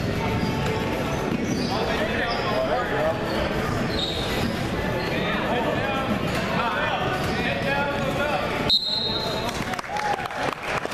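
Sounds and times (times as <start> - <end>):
referee's whistle: 8.6 - 9.4.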